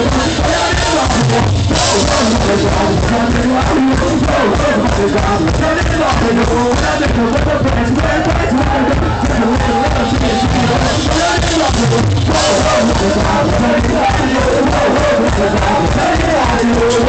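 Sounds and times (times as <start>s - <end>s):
person singing: 0.0s - 17.0s
punk rock band playing live: 0.0s - 17.0s.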